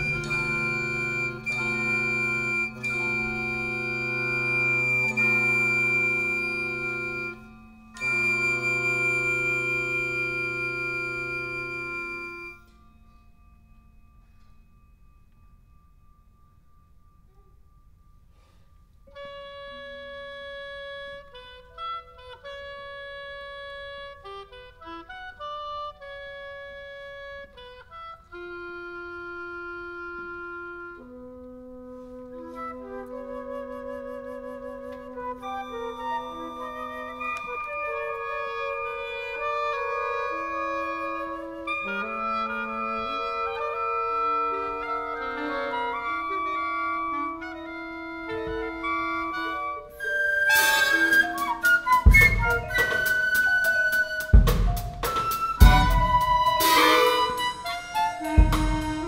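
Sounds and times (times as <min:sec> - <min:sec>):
wind ensemble playing: 0:00.0 - 0:14.2, 0:18.4 - 0:59.0.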